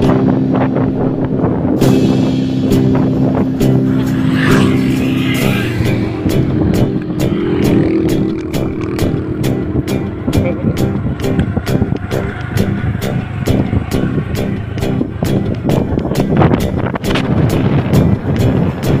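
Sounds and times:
background music: 0.0s - 19.0s
motorcycle running: 0.0s - 19.0s.

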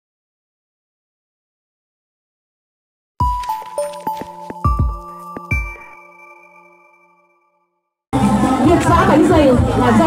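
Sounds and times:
intro jingle tones: 3.2s - 7.8s
crowd chatter: 8.2s - 10.0s.

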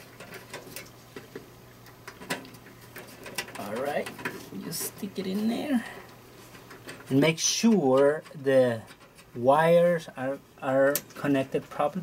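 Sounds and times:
speaker wire clicks and rustles: 0.0s - 12.0s.

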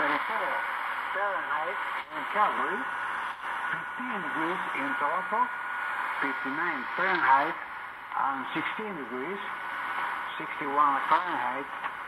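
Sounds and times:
radio static hiss: 0.0s - 12.0s.

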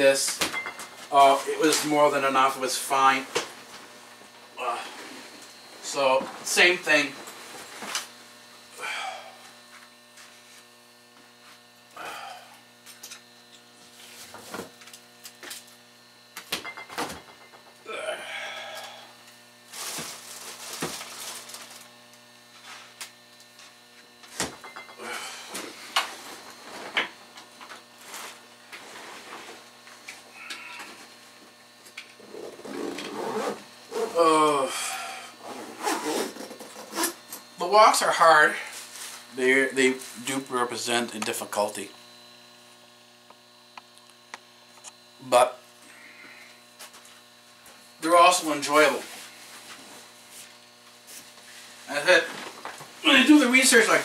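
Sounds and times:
electrical hum: 0.0s - 54.0s.

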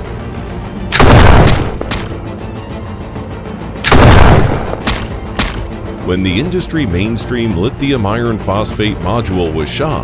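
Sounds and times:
background music: 0.0s - 10.0s
rifle shot: 0.9s - 2.2s, 3.8s - 5.7s.

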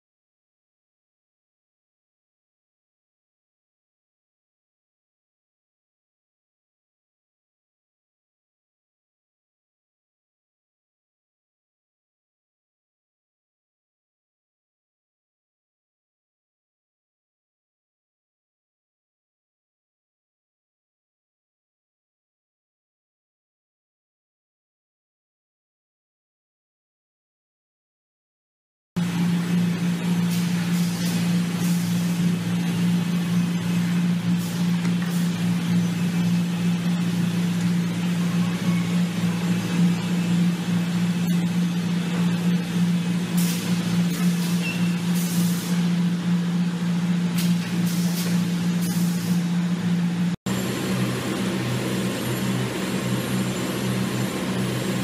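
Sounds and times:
machinery motor hum: 29.0s - 55.0s.

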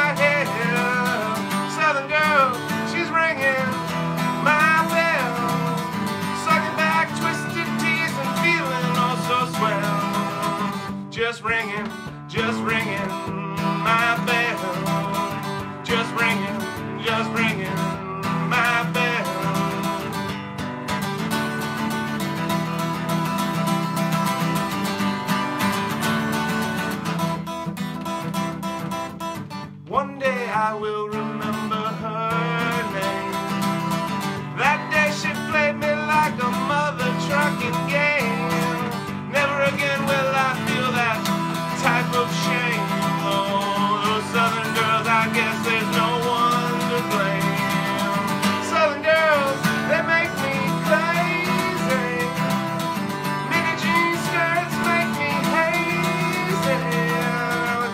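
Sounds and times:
man singing: 0.0s - 20.4s, 29.8s - 57.9s
acoustic guitar strumming: 0.0s - 57.9s.

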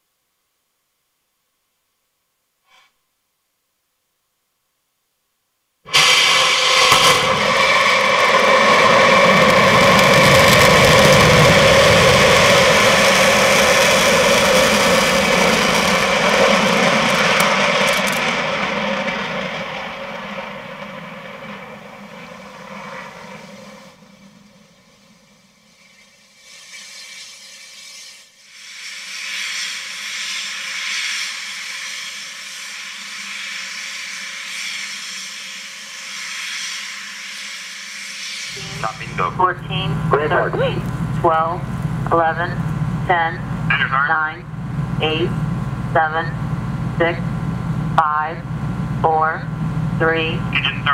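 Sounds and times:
steady rushing noise: 5.9s - 25.5s
rocket engine roar: 5.9s - 25.6s, 29.2s - 50.9s.

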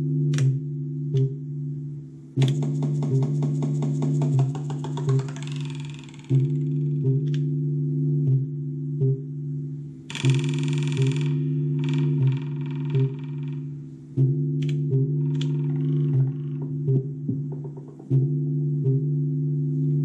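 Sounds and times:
held low synth chord: 0.0s - 20.0s
fast ticking pattern: 2.4s - 6.8s, 10.1s - 13.6s.

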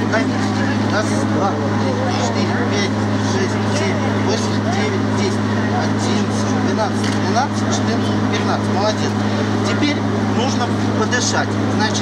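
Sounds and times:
steady low hum: 0.0s - 12.0s
voices counting aloud: 0.0s - 12.0s.

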